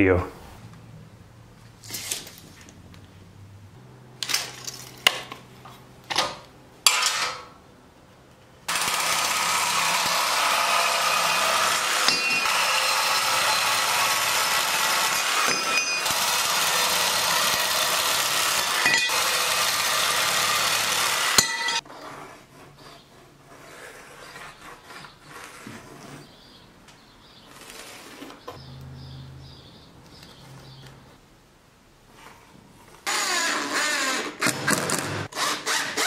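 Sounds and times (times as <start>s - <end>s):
reciprocating saw cutting metal: 8.7s - 21.8s.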